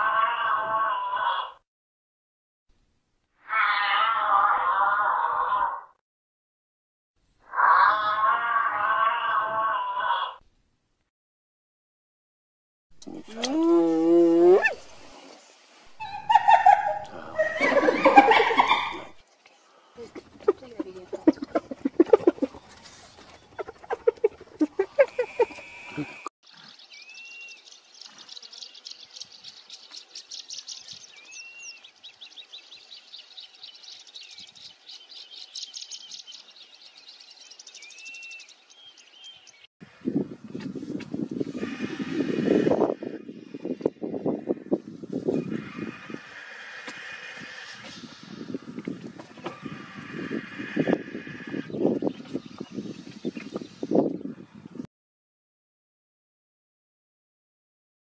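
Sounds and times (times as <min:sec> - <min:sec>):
long animal call: 0:00.0 - 0:01.6, 0:03.4 - 0:05.9, 0:07.5 - 0:10.4, 0:23.6 - 0:26.3
birds chirping: 0:14.7 - 0:39.7, 0:40.4 - 0:54.8.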